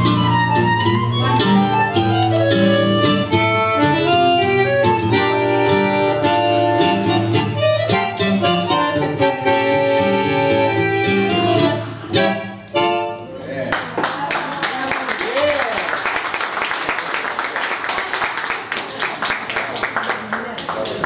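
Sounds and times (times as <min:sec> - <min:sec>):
plucked nylon-string guitar: 0:00.0 - 0:13.1
bandoneon chords and melody: 0:00.0 - 0:13.4.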